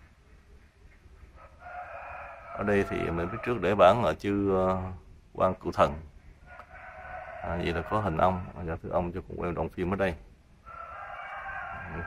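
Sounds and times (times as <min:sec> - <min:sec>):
faint drawn-out animal call: 0:00.0 - 0:04.1, 0:10.6 - 0:12.0.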